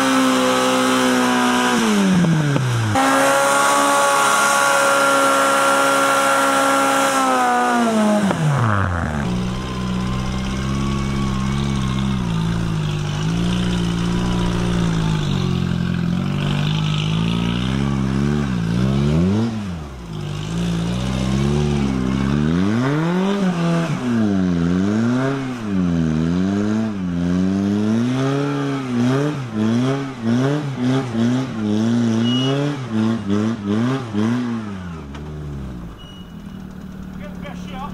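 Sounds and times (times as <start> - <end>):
car engine revving hard: 0.0 - 35.9.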